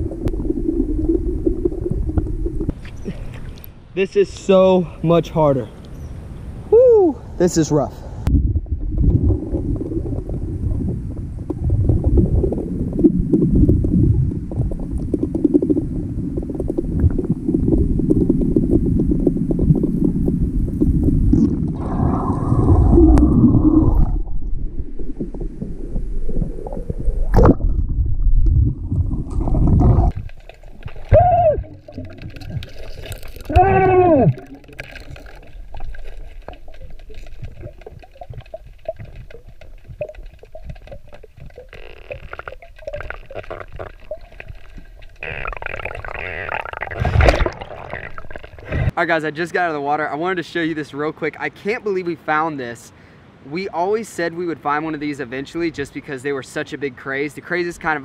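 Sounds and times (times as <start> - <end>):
muffled underwater rumble: 0.0 - 3.3, 8.2 - 48.9.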